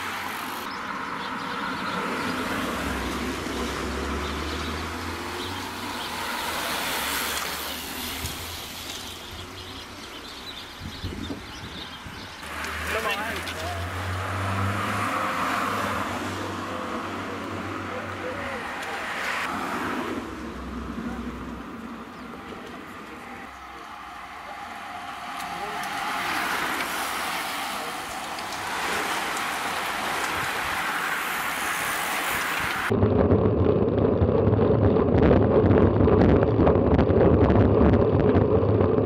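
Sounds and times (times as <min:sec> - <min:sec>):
bicycles passing by: 0:00.0 - 0:33.0
background voices: 0:12.4 - 0:32.9.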